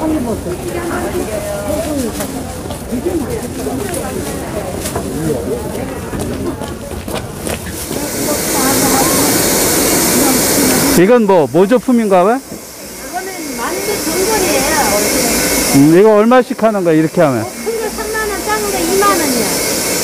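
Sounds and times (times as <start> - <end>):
crowd chatter: 0.0 - 20.0
steam hissing from steamer: 7.1 - 20.0.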